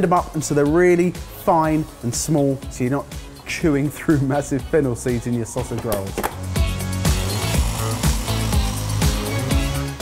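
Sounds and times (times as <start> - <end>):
background music with steady beat: 0.0 - 10.0
food processor grinding seeds: 6.3 - 10.0.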